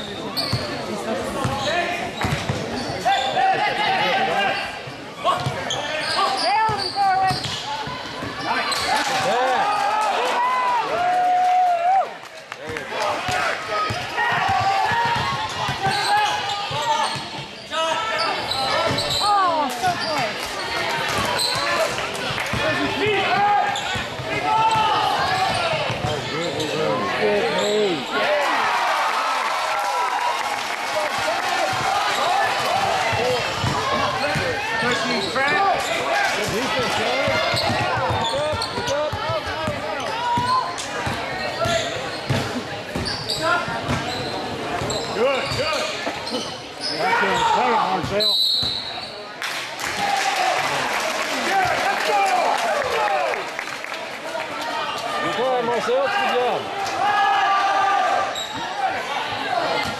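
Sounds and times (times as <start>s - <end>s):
crowd chatter: 0.0s - 59.9s
basketball bouncing on wooden court: 13.9s - 16.1s, 37.2s - 43.2s.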